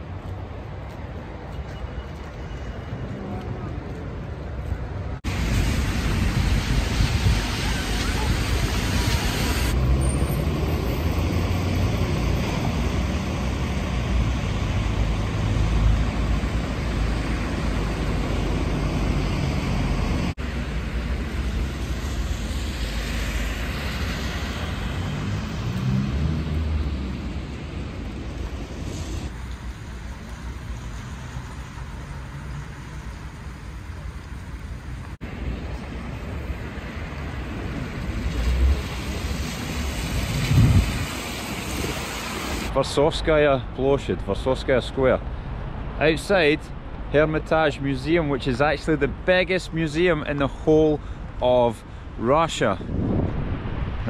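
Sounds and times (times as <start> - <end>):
passing cars and buses: 0.0 - 54.0
tyres hissing on wet road: 5.3 - 42.8.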